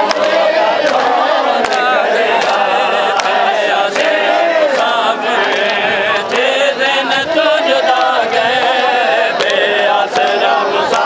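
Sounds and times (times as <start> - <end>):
men chanting a lament: 0.0 - 11.0
sharp slaps: 9.4 - 10.3.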